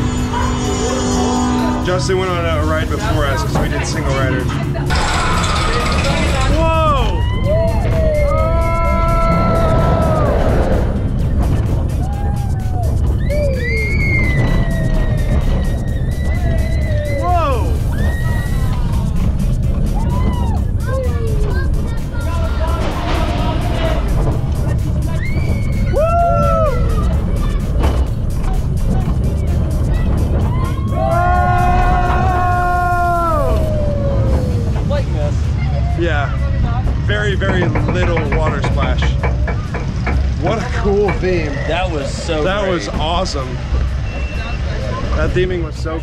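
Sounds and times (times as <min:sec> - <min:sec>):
roller coaster running on track: 0:00.0 - 0:46.0
riders screaming and whooping: 0:05.0 - 0:22.9, 0:23.6 - 0:27.8, 0:29.4 - 0:35.0.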